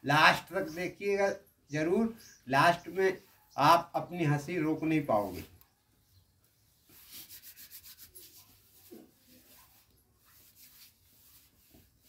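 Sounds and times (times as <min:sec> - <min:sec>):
hands rubbing together: 0:06.8 - 0:12.0.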